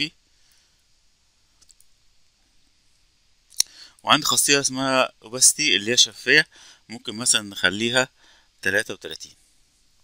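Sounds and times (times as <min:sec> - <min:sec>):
person speaking: 0:00.0 - 0:00.2, 0:03.5 - 0:09.5.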